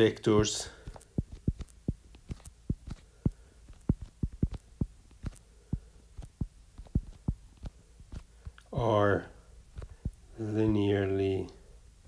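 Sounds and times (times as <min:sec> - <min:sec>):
stylus tapping on glass screen: 0:00.8 - 0:08.2.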